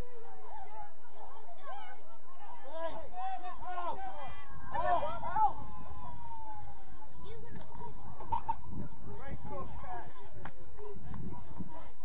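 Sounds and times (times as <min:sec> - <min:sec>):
wind rumble on microphone: 0:07.5 - 0:12.0.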